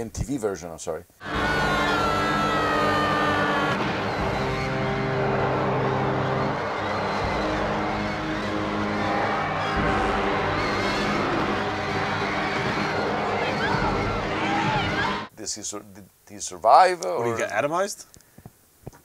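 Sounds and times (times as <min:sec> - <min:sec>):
man screaming: 0:01.2 - 0:03.8
orchestral score: 0:01.2 - 0:15.3
dense low rumble: 0:03.3 - 0:15.3.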